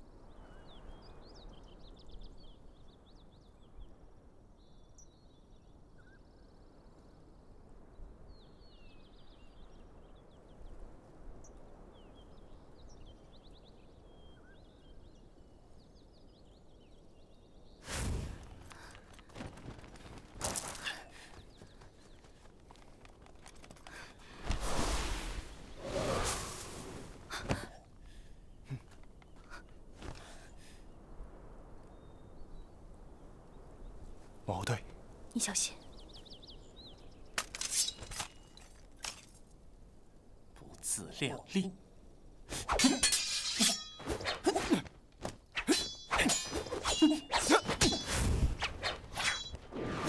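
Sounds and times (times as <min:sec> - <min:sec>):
faint birds chirping: 0:00.0 - 0:49.7.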